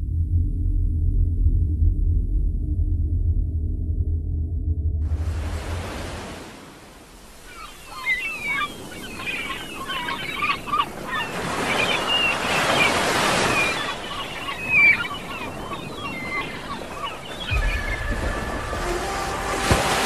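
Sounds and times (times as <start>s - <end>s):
surf rushing: 5.0s - 10.1s, 11.0s - 20.0s
gulls calling: 7.2s - 20.0s.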